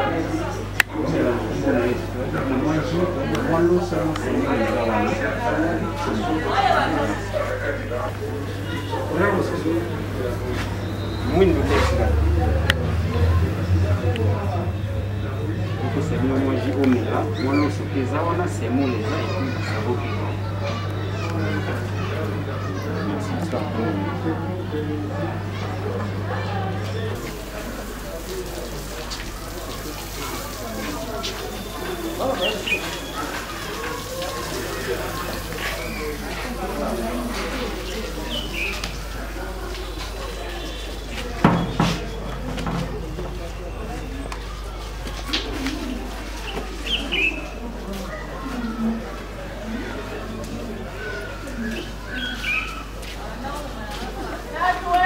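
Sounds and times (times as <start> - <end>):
several voices talking: 0.0 - 55.0.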